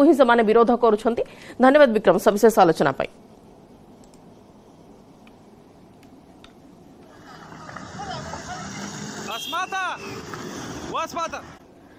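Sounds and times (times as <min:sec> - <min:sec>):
traffic noise: 0:00.0 - 0:11.9
wind: 0:00.0 - 0:11.9.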